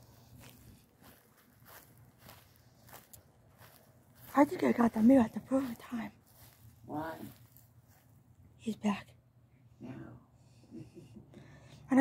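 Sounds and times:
footsteps on grass: 0.0s - 8.3s.

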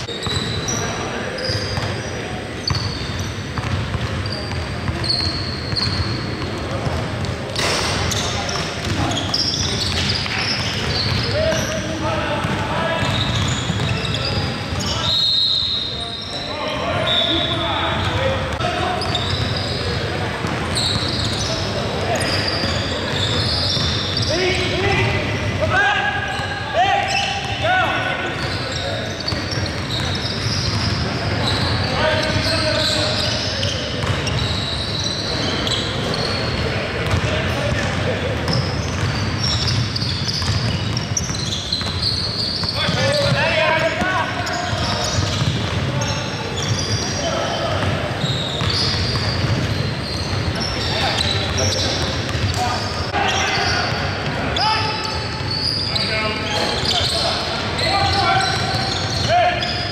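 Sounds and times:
players calling out: 0.0s - 59.9s
sneakers squeaking: 0.0s - 59.9s
basketball dribbling: 2.6s - 11.7s, 12.4s - 14.6s, 23.0s - 24.3s, 34.0s - 34.6s, 36.6s - 45.9s, 47.8s - 52.9s.

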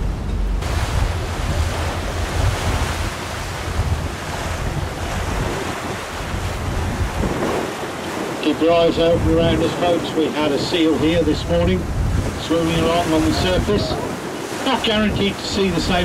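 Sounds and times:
choppy sea wash: 0.0s - 16.0s
wind buffeting microphone: 0.0s - 16.0s.

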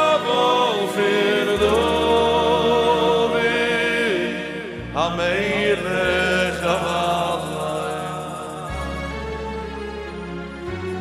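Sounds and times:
man chanting melody: 0.0s - 8.9s.

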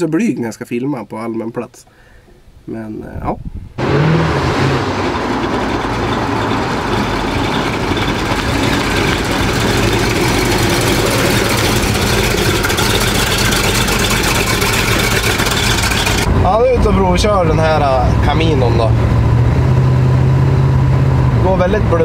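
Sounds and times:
road noise: 3.8s - 22.0s
rough-running vvehicle engine: 3.8s - 22.0s.

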